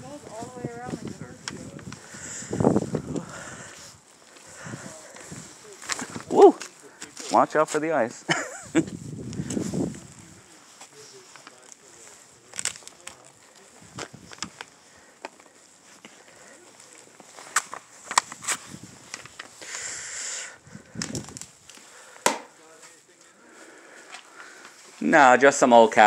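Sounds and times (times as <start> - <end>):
footsteps on gritty concrete: 0.0 - 19.8, 21.0 - 25.1
short rustle: 0.0 - 25.2
footsteps crunching on snow: 0.0 - 26.0.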